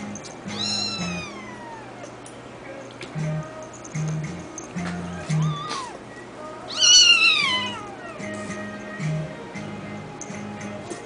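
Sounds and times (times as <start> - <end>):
kittens play-fighting: 0.0 - 2.2, 3.0 - 9.3
kitten meowing: 0.5 - 2.1, 5.0 - 6.0, 6.7 - 8.3.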